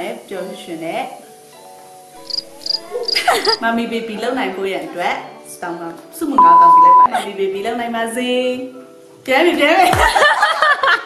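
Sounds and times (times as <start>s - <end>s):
soft lo-fi music: 0.0s - 11.0s
cricket chirping: 2.2s - 3.6s.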